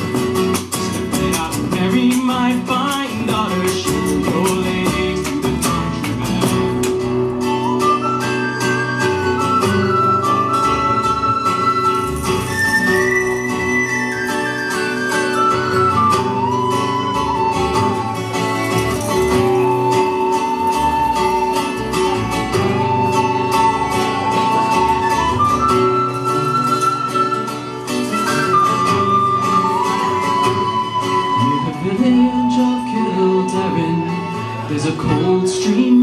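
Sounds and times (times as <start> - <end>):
frame drum: 0.0 - 7.2, 17.3 - 23.0
upright bass: 0.0 - 8.2, 9.0 - 26.0
strummed acoustic guitars: 0.0 - 36.0
tin whistle melody: 7.3 - 34.9.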